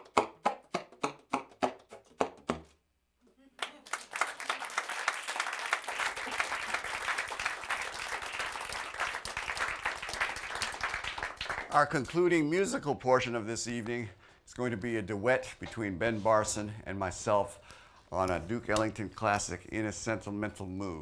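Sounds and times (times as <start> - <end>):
audience applause: 3.6 - 12.0.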